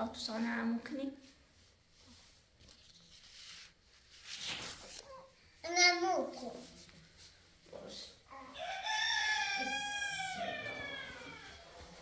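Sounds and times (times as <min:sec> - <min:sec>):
rooster crowing: 0:08.5 - 0:11.9.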